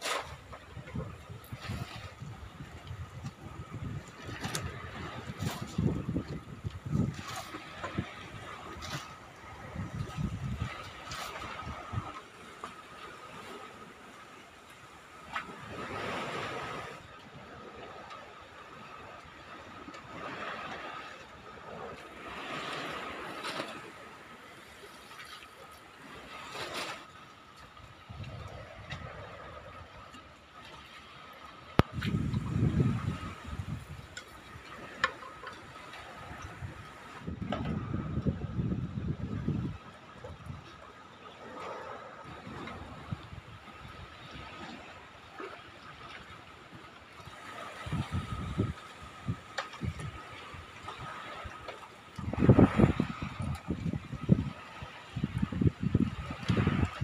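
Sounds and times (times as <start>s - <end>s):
wind buffeting microphone: 0.0s - 12.2s, 27.9s - 30.0s, 31.8s - 40.6s, 42.2s - 44.9s, 47.3s - 57.0s
water sloshing: 19.5s - 37.9s.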